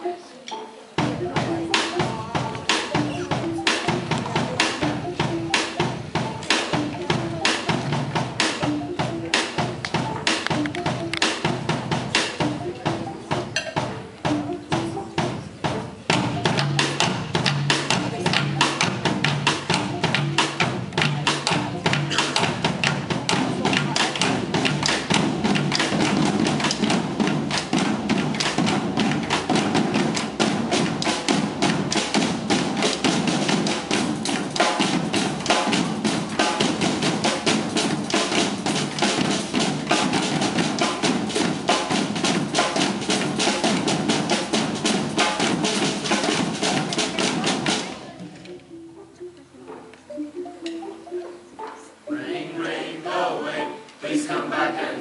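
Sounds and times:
percussion ensemble drumming: 0.9s - 55.0s.

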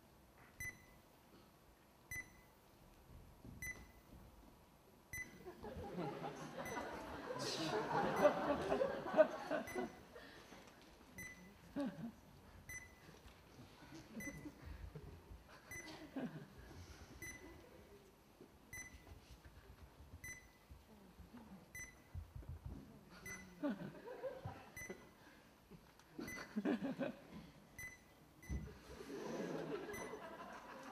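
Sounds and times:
short electronic beeps: 0.6s - 1.0s, 2.1s - 2.5s, 3.6s - 4.0s, 11.2s - 11.5s, 12.7s - 13.0s, 18.7s - 19.0s, 20.2s - 20.6s, 21.8s - 22.1s, 23.2s - 23.6s, 27.8s - 28.6s, 29.9s - 30.2s.

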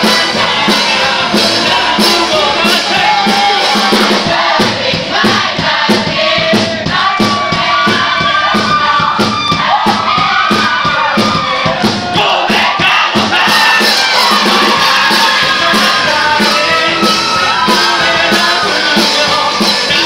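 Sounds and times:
crowd noise: 0.0s - 20.0s
live pop-rock band playing: 0.0s - 20.0s
voices singing: 0.0s - 20.0s.

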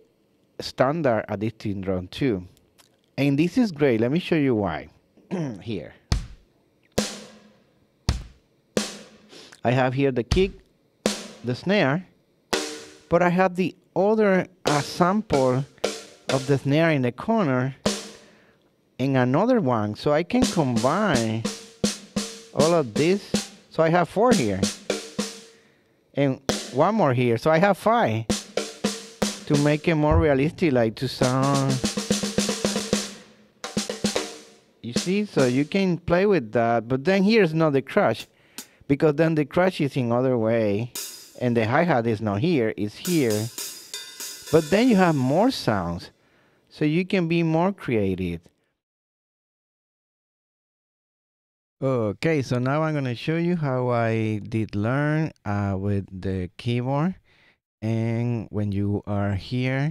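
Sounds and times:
kick drum hits: 6.1s - 6.4s, 8.1s - 8.4s, 10.3s - 10.6s, 30.1s - 30.6s
snare drum hits: 6.1s - 6.4s, 8.1s - 9.0s, 29.5s - 30.5s.

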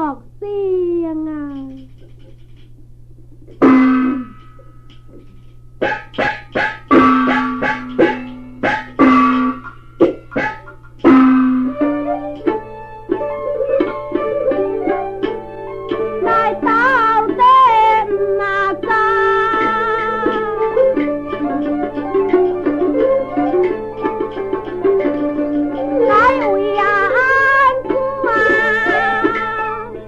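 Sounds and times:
plucked-string melody: 0.8s - 30.0s
sharp ringing percussion strikes: 3.6s - 12.2s.

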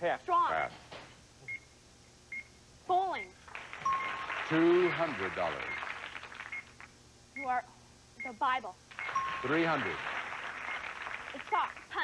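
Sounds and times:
high-pitched electronic beeps: 3.8s - 5.8s, 9.0s - 9.8s.

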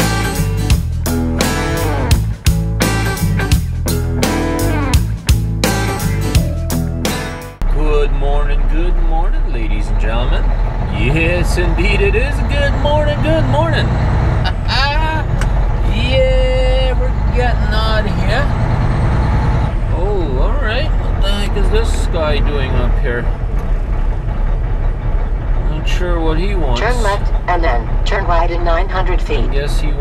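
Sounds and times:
guitar music: 0.0s - 7.6s
diesel truck engine rumbling: 0.0s - 30.0s
person speaking: 26.8s - 27.6s.

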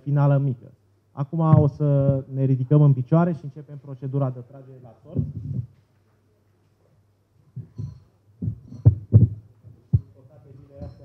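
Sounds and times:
dull thuds and knocks on table: 1.5s - 2.2s.

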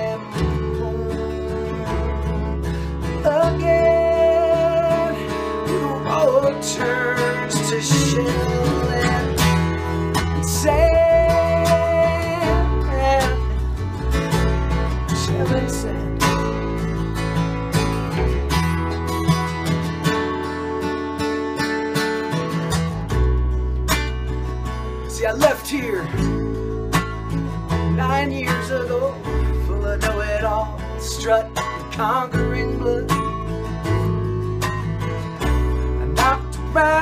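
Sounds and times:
acoustic guitar strumming: 0.0s - 37.0s
bass guitar: 0.0s - 37.0s.

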